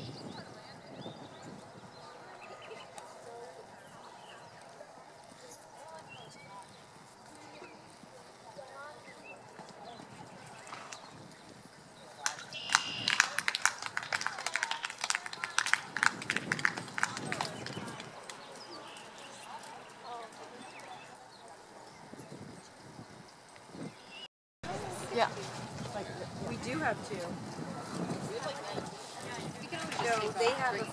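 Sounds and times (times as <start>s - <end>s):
murmur of people talking: 0.0s - 30.9s.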